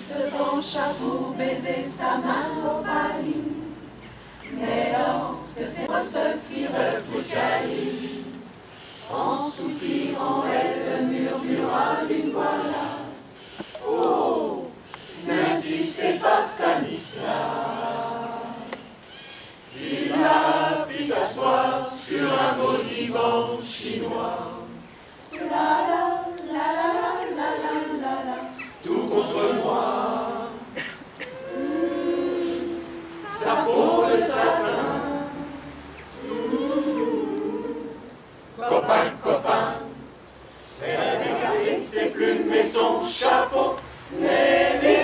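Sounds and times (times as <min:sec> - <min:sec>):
mixed choir singing a cappella: 0:00.0 - 0:45.0.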